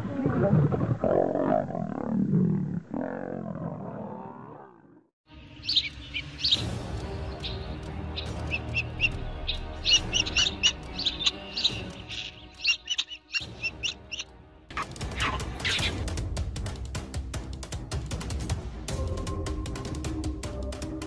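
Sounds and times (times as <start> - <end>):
lions growling and fighting: 0.0 - 5.0
background music: 5.2 - 21.0
high bird chirps: 5.6 - 6.7, 7.3 - 14.3.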